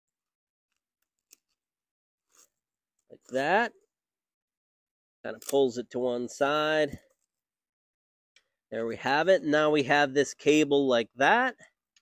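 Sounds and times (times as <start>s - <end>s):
scratchy handling noises: 0.8s - 3.5s.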